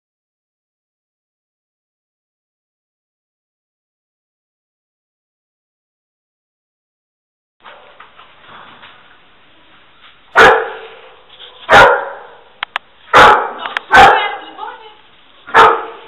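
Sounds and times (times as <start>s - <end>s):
dog barking in a room: 10.3s - 14.4s, 15.4s - 16.0s.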